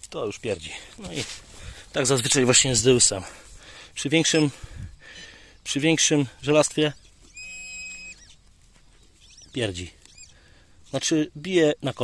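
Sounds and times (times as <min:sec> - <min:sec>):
metal detector electronic tone: 0:05.1 - 0:08.4, 0:09.2 - 0:11.5.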